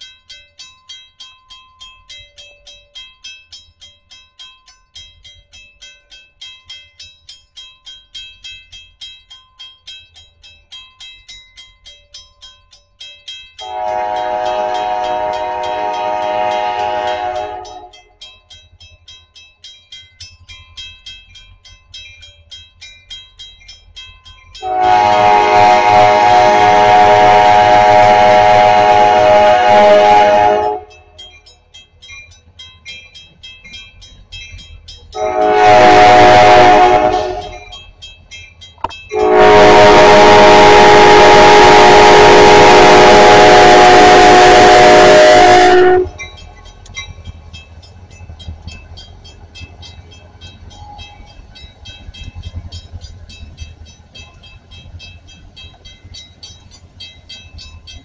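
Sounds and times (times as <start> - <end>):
low locomotive rumble: 10.0 - 58.0
locomotive air horn blasts: 13.6 - 17.9, 24.6 - 31.0, 35.2 - 37.6, 39.1 - 46.2.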